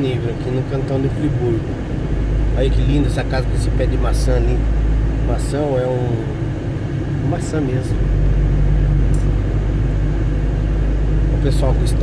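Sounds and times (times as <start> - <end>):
vehicle engine and tyres rumbling: 0.0 - 12.0.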